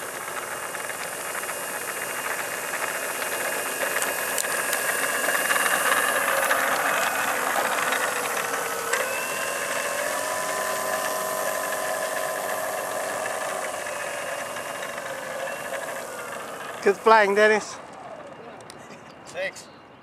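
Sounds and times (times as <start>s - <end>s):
electric motor and propeller whining: 0.0s - 19.6s.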